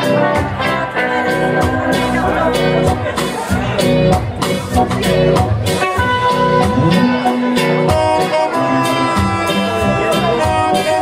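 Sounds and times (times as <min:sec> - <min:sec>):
live ska band playing: 0:00.0 - 0:11.0.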